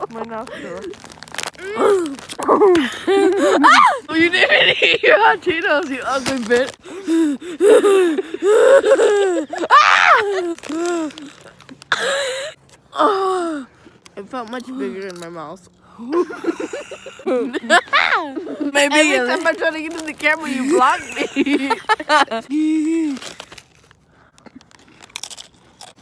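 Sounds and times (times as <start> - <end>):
crunchy snack chewing: 0.0 - 3.4, 9.8 - 12.2, 22.7 - 26.0
woman whining cry: 1.6 - 4.8, 7.1 - 13.7, 17.2 - 18.7.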